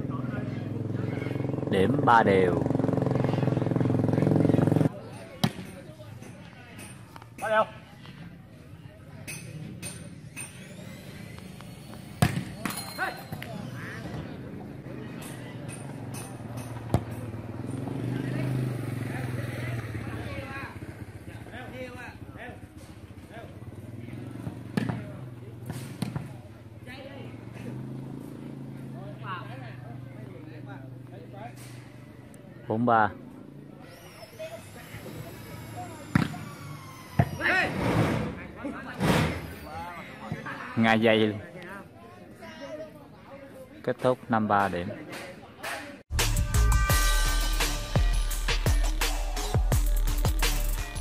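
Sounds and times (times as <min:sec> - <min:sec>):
motorcycle engine idling: 0:00.0 - 0:04.9, 0:14.2 - 0:32.6.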